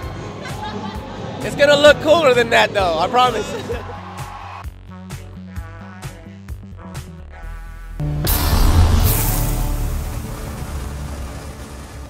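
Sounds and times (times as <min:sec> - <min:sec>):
low rumble: 0:07.4 - 0:12.0.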